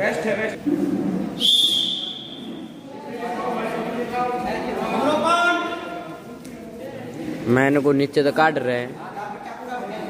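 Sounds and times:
referee's whistle blast: 0:01.4 - 0:02.6.

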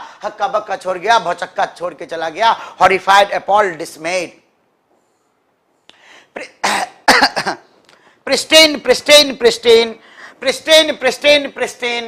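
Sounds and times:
man coughing: 0:06.3 - 0:07.8.

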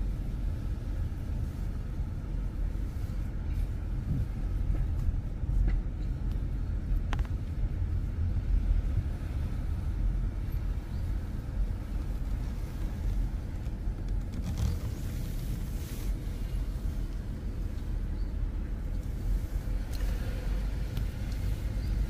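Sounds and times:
car engine rumble: 0:00.0 - 0:22.0
road noise: 0:00.0 - 0:22.0.

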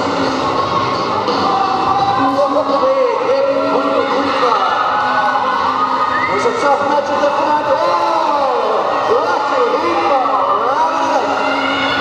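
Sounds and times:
background music: 0:00.0 - 0:12.0
indistinct voices echoing: 0:00.0 - 0:12.0.

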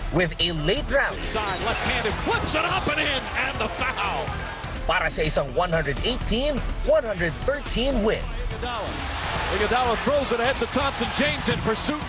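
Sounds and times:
arena crowd: 0:00.0 - 0:12.0
background music: 0:00.0 - 0:12.0.

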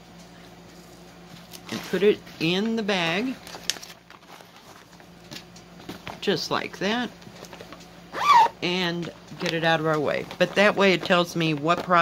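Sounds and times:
plastic bag rustling: 0:03.2 - 0:06.3, 0:08.4 - 0:12.0.

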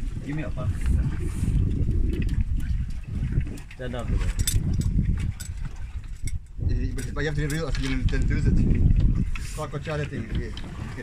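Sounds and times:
boat engine rumbling: 0:00.0 - 0:11.0
man talking: 0:09.5 - 0:11.0.

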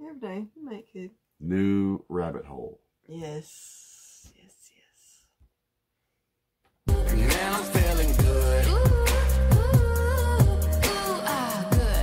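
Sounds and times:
faint whispering: 0:03.6 - 0:05.4.

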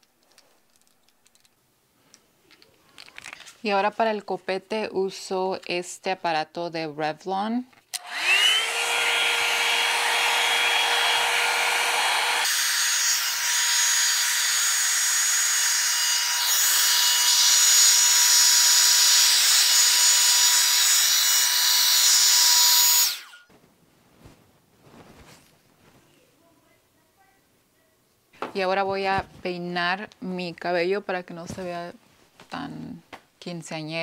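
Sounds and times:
hot-air dryer brush running: 0:08.0 - 0:23.5.

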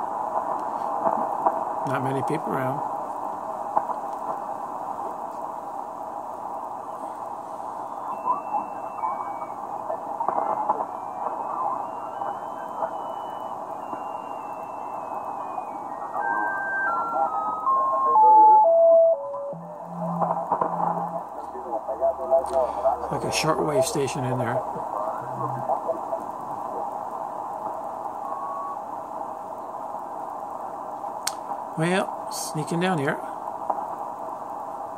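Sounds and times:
radio hiss and static: 0:00.0 - 0:34.9
heterodyne whistle: 0:07.9 - 0:09.6, 0:10.2 - 0:21.2, 0:28.2 - 0:28.9
low steady tone: 0:16.3 - 0:21.4.

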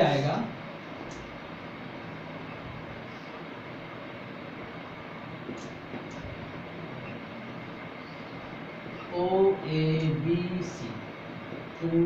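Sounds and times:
room hiss and hum: 0:00.0 - 0:12.0.

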